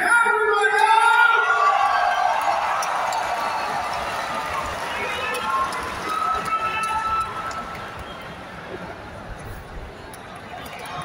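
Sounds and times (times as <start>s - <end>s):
crowded arena noise: 0.0s - 11.0s.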